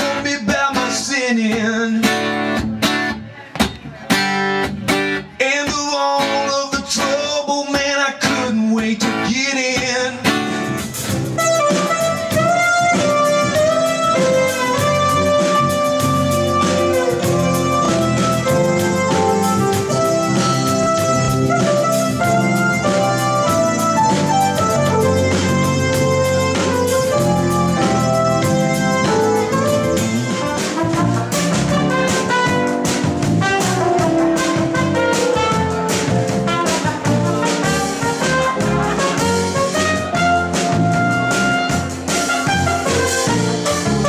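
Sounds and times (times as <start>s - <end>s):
man singing: 0.0s - 2.6s, 5.2s - 10.8s
acoustic guitar strumming: 0.0s - 44.0s
drum kit steady beat: 7.8s - 44.0s.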